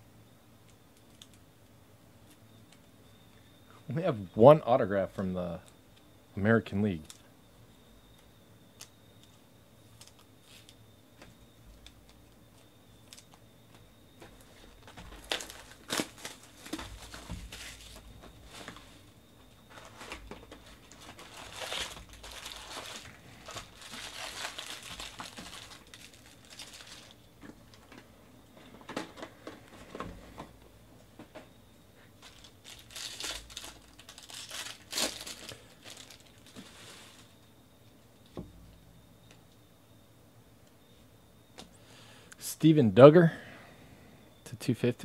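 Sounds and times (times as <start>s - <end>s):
foil wrappers crinkling and tearing: 14.8s - 19.1s, 19.7s - 27.9s, 32.2s - 37.4s.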